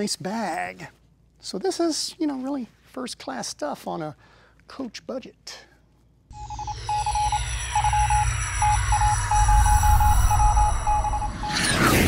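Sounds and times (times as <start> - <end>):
music: 6.3 - 11.1
stuttering beep tone: 6.3 - 12.0
deep rumble: 6.4 - 11.8
falling whistling sweeps: 6.9 - 12.0
whoosh: 7.7 - 12.0.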